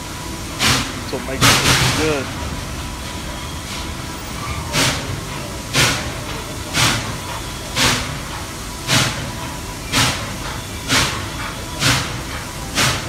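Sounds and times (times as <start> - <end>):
steam hissing: 0.0 - 13.0
steam locomotive chuffing: 0.0 - 13.0.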